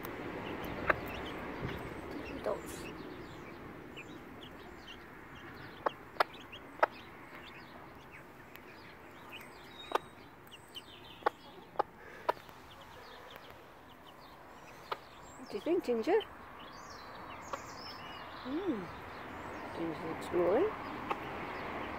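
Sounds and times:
hen clucking: 0:00.3 - 0:16.3.

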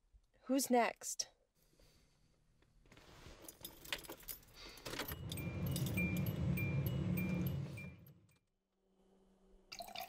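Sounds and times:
keys jangling: 0:03.4 - 0:07.8.

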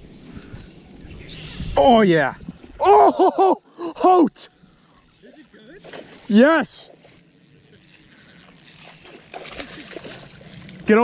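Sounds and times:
fish splashing in water: 0:04.6 - 0:10.9.

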